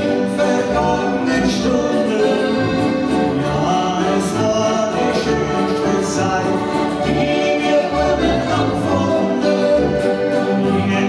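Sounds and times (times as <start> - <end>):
accordion chords: 0.0 - 11.0
acoustic guitar: 0.0 - 11.0.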